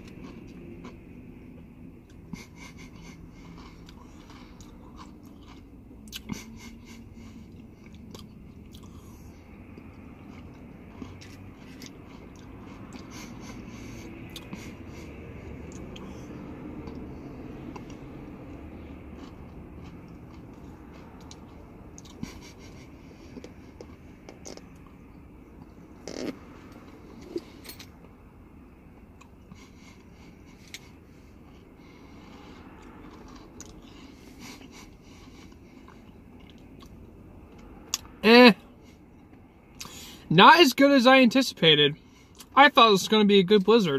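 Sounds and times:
person chewing: 0.0 - 28.0, 29.0 - 38.1, 39.1 - 40.1
low steady background hum: 0.0 - 43.9.

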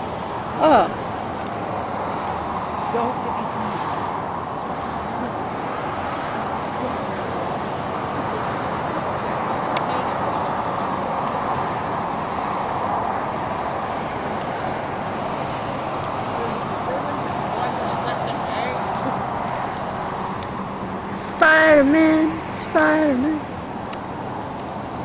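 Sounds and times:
steady outdoor hiss: 0.0 - 25.0.

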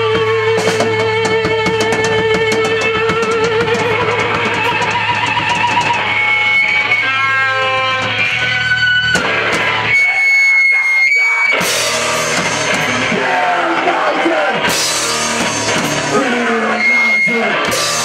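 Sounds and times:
electric guitar lead notes: 0.0 - 10.4, 11.1 - 18.0
heavy rock band playing: 0.0 - 18.0.

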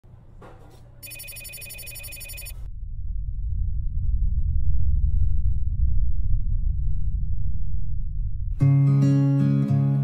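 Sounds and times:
electronic ringing tone: 1.0 - 2.6
deep rumble: 2.6 - 8.7.

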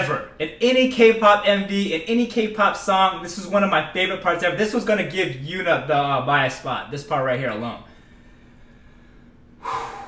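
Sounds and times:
man exhaling whew: 9.6 - 10.0.

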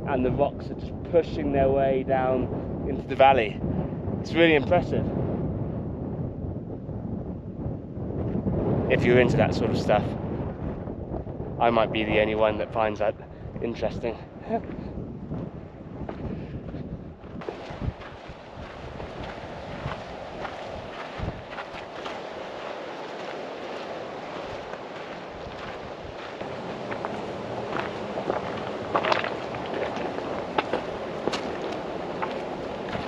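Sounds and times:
wind noise on microphone: 0.0 - 33.0
footsteps on stony trail: 14.5 - 33.0
boots striking stones: 24.6 - 33.0.

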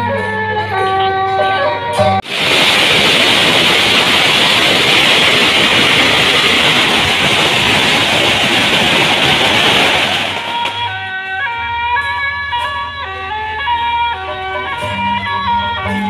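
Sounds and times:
firecrackers crackling: 2.2 - 11.4.

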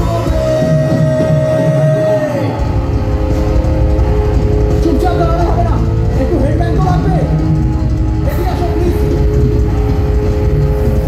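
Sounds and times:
metal band playing: 0.0 - 11.0.

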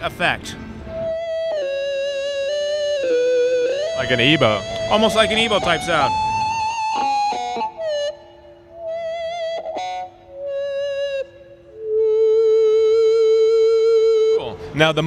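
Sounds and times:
electric guitar feedback notes: 0.6 - 15.0.

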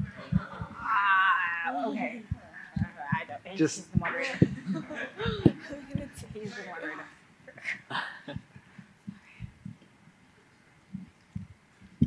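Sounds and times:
soft low thumps: 0.0 - 1.4, 2.0 - 6.7, 8.3 - 10.0, 10.9 - 12.0.

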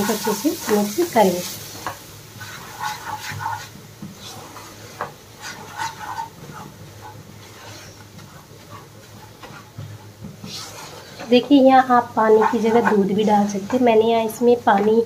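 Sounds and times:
spatula scraping a pan: 0.0 - 15.0.

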